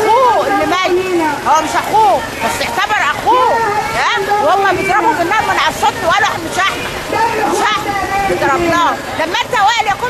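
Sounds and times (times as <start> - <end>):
woman speaking loudly: 0.0 - 10.0.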